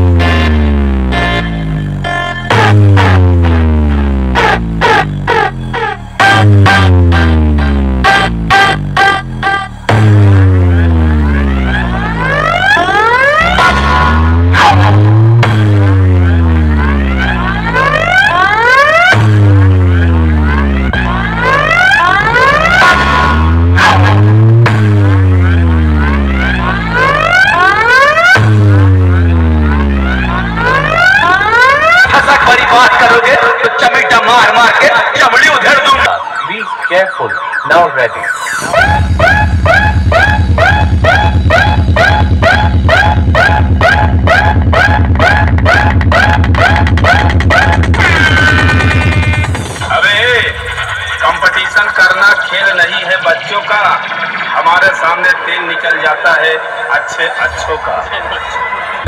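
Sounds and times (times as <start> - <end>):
bass-heavy dj track on speakers: 0.0 - 59.0.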